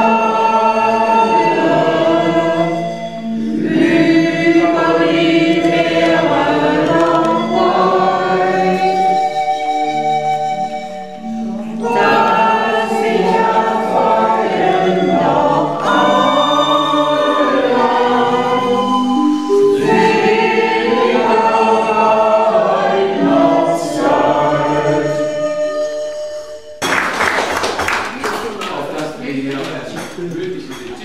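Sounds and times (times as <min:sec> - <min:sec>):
group of people singing: 0:00.0 - 0:10.4, 0:11.6 - 0:26.0.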